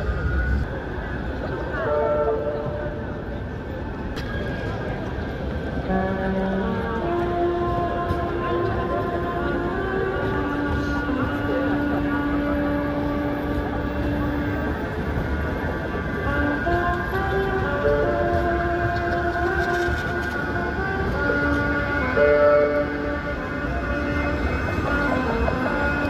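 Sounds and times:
tram tones stepping in pitch: 0:00.0 - 0:26.0
tram wheels rumbling on rails: 0:00.0 - 0:26.0.

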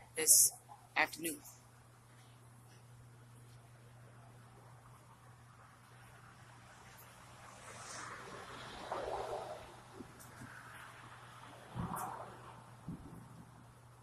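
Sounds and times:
wind thumps on microphone: 0:11.7 - 0:13.6.

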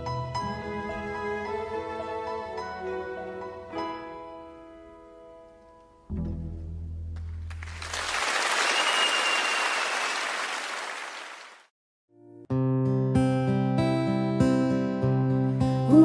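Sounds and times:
audience applause: 0:07.5 - 0:11.7
whistle: 0:08.3 - 0:10.6.

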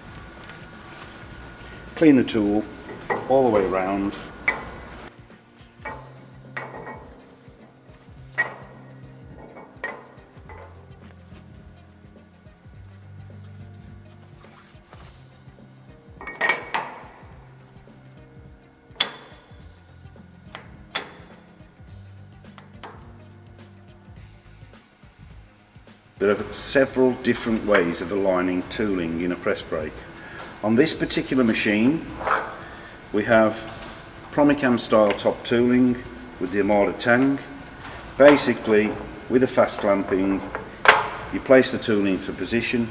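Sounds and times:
quiet background music with bass: 0:00.0 - 0:42.9
metallic clinks and knocks: 0:05.8 - 0:11.4, 0:16.1 - 0:17.8, 0:19.0 - 0:19.8, 0:38.1 - 0:41.8.

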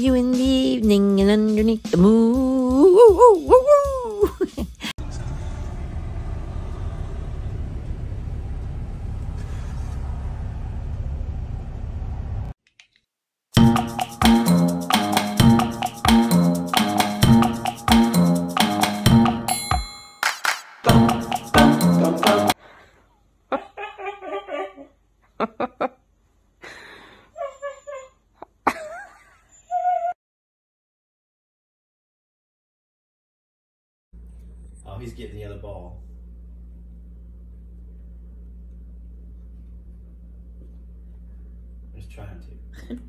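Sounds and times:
woman singing ooh: 0:00.0 - 0:04.6
music: 0:00.0 - 0:04.9, 0:13.6 - 0:22.6
low street traffic rumble: 0:05.0 - 0:12.5.

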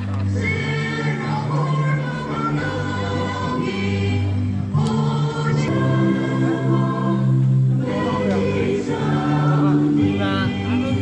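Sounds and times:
choir singing long held notes: 0:00.0 - 0:11.0.

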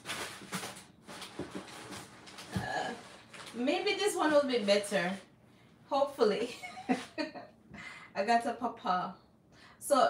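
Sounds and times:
rummaging in cardboard box: 0:00.0 - 0:05.2.

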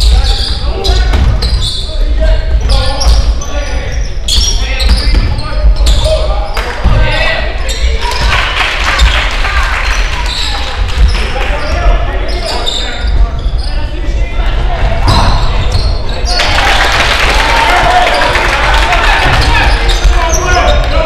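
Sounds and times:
chatter and calls of spectators: 0:00.0 - 0:21.0.

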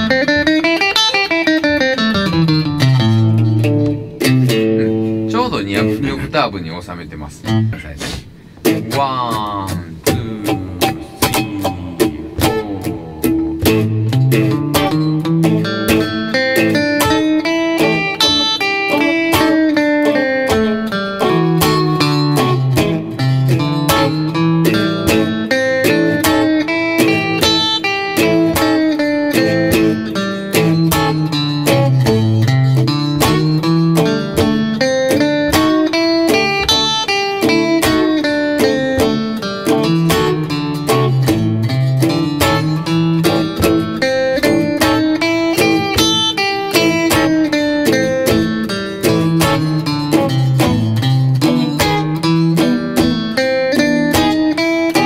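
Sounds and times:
steady drum beat: 0:02.2 - 0:18.6, 0:20.5 - 0:54.4
electric guitar blues runs: 0:08.6 - 0:55.0
bass line: 0:08.8 - 0:17.0.

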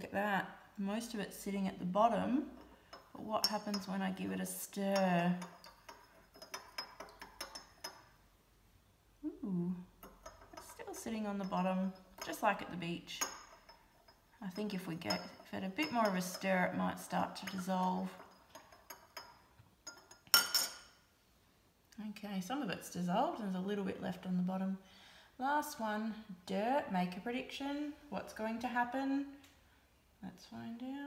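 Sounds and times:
teaspoon stirring in glass: 0:02.5 - 0:08.2, 0:10.0 - 0:20.8
spoon clinking glass: 0:02.6 - 0:04.0, 0:04.9 - 0:08.1, 0:13.2 - 0:16.5, 0:17.3 - 0:21.0.

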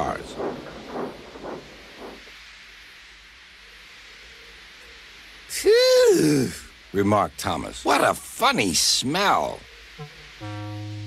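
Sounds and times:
steam locomotive puffs: 0:00.0 - 0:03.5
faint hiss of steam: 0:00.0 - 0:11.0.

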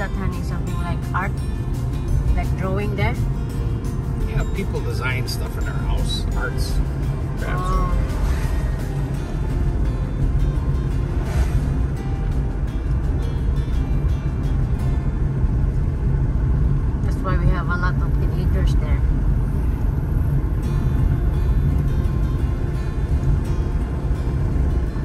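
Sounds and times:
road and engine rumble in car: 0:00.0 - 0:25.0.

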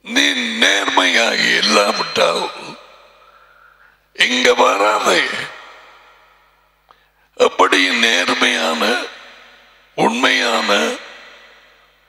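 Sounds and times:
man speaking into headset: 0:00.0 - 0:02.8, 0:04.2 - 0:05.6, 0:07.4 - 0:09.2, 0:10.0 - 0:11.2
breathy exhale: 0:03.1 - 0:04.1.

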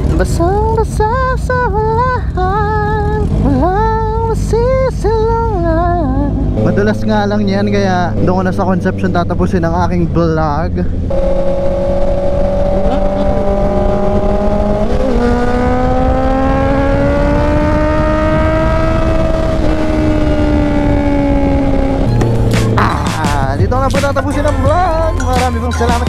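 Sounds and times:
wind and road noise: 0:00.0 - 0:25.8
motorcycle engine cruising: 0:00.0 - 0:26.0.

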